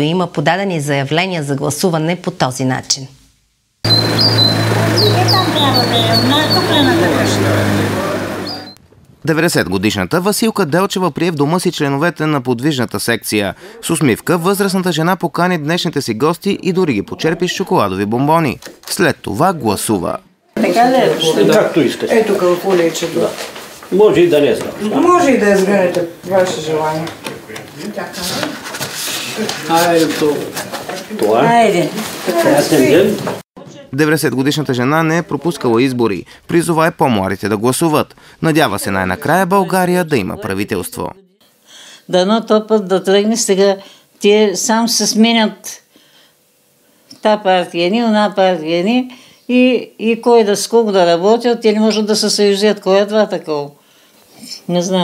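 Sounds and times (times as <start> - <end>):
high bird chirps: 3.9 - 7.3, 8.4 - 8.8
low street hum: 3.9 - 9.3
paper ballot rustling and scraping: 20.6 - 33.4.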